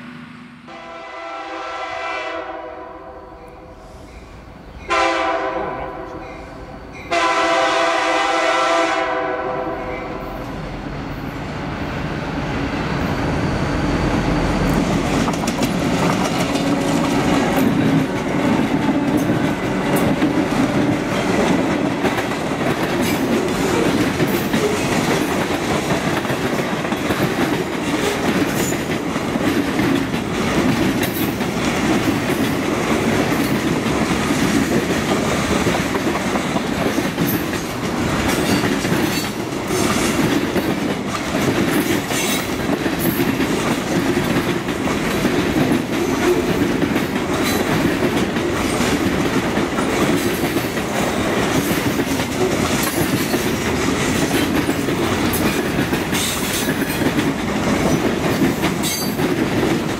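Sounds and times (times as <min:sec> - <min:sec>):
train wheels rumbling on rails: 0:03.8 - 0:59.9
train wheels clicking and clacking: 0:13.1 - 0:59.9.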